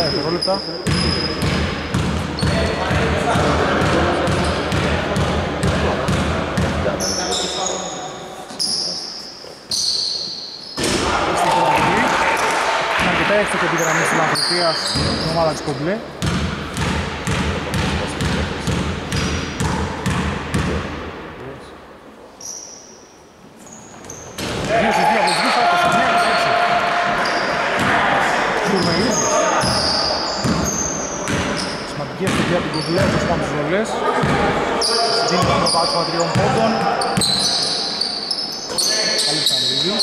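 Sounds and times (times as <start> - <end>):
sneakers squeaking on floor: 0.0 - 11.0, 13.8 - 20.8, 22.4 - 28.0, 28.6 - 33.4, 34.2 - 40.0
basketball bouncing on wooden floor: 0.8 - 6.9, 16.2 - 21.0, 32.3 - 33.2
players calling out: 9.7 - 15.8, 24.6 - 40.0.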